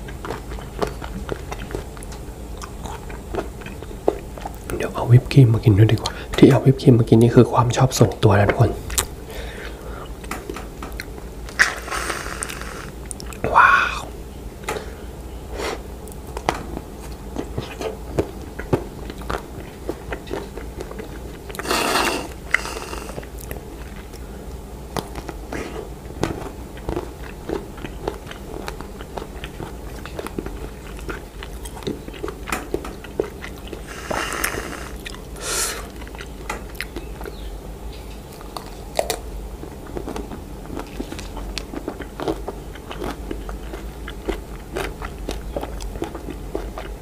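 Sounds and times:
crunchy bites and chewing: 0:00.0 - 0:04.8, 0:10.2 - 0:14.1, 0:16.1 - 0:24.3, 0:24.9 - 0:37.5, 0:38.2 - 0:47.0
wet mouth sounds: 0:11.0 - 0:14.2, 0:17.4 - 0:24.2, 0:26.8 - 0:37.4.

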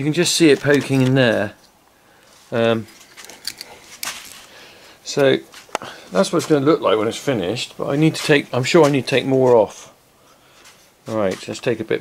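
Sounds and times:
axe head clicks and scrapes: 0:02.9 - 0:04.5.

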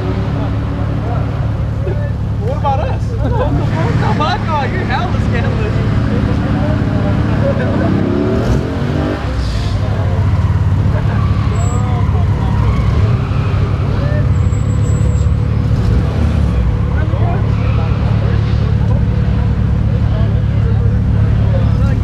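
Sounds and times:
car engines idling: 0:00.0 - 0:22.0
people's voices: 0:00.0 - 0:22.0.

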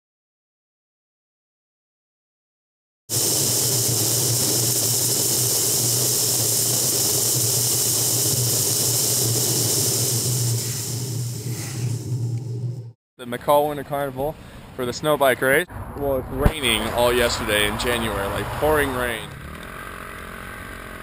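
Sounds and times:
low drone: 0:08.5 - 0:13.0, 0:15.7 - 0:21.0
wind rushing past vehicle: 0:15.7 - 0:19.3
tyre noise on road: 0:15.7 - 0:21.0.

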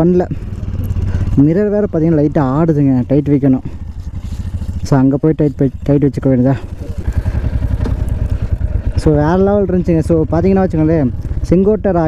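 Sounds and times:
motorcycle engine running at low revs: 0:00.0 - 0:12.0.

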